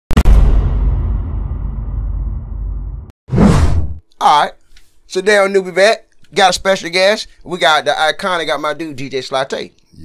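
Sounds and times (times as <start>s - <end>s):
low rumbling boom: 0.2s - 4.0s
whoosh: 0.2s - 4.0s.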